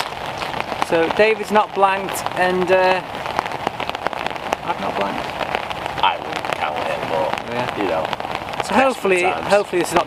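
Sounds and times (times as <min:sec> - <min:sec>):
rain falling steadily: 0:00.0 - 0:10.0
raindrops ticking close by: 0:00.0 - 0:10.0.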